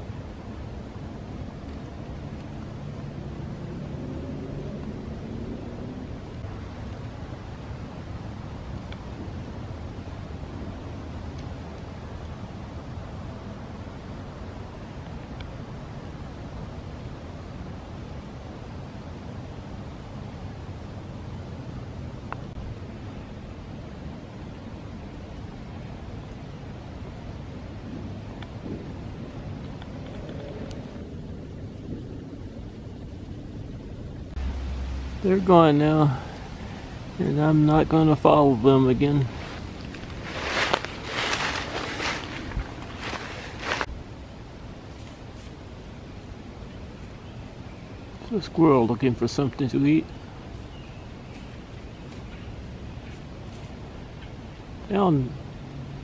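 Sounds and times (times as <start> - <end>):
low rumbling background noise: 0.0 - 56.0.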